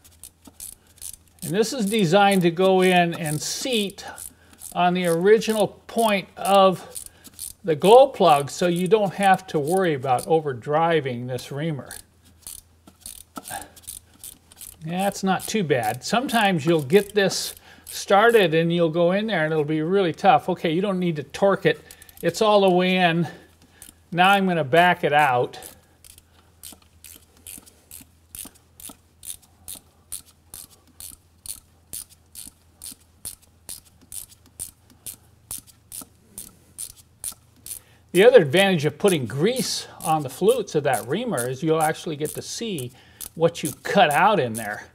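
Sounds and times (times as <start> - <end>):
ratcheting wrench clicking: 0.0 - 5.6, 6.4 - 7.6, 8.3 - 10.3, 11.8 - 18.1, 21.8 - 22.4, 23.6 - 24.0, 25.2 - 37.9, 38.9 - 44.8.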